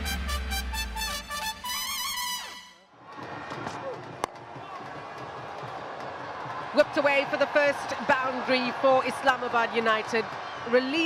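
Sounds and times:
intro music: 0.0 - 2.8
stadium crowd noise: 2.8 - 11.0.

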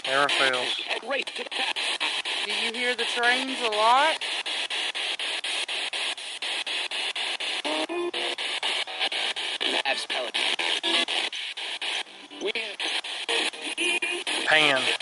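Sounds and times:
radio sweeping through stations: 0.0 - 15.0.

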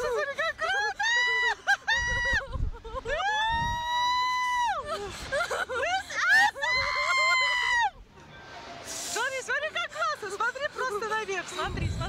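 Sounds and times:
wind rumble on microphone: 1.9 - 4.2, 11.5 - 12.0.

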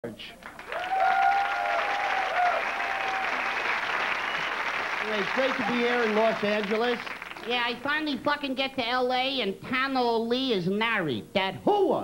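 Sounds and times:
audience applauding and cheering: 0.4 - 8.0
held whoop: 0.7 - 3.5.

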